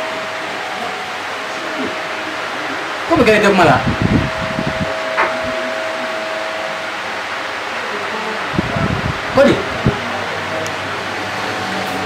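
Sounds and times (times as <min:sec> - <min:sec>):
thin held tone: 0:00.0 - 0:09.2
steady hiss: 0:00.0 - 0:12.0.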